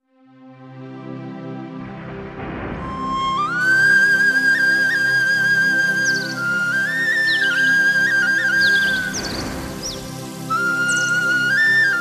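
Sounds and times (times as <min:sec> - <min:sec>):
bamboo flute melody: 0:02.8 - 0:12.0
high whistling chirps: 0:02.8 - 0:12.0.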